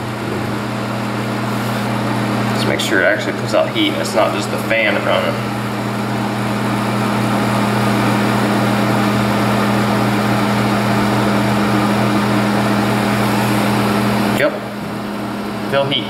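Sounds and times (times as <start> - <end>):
heater fan motor humming: 0.0 - 16.0.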